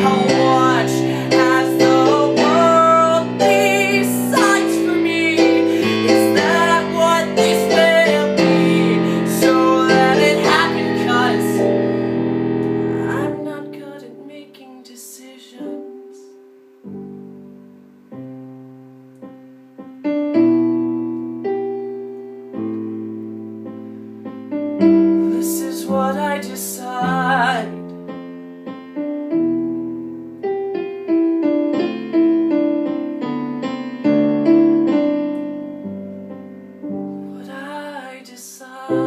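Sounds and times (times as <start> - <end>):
digital piano chords: 0.0 - 38.2.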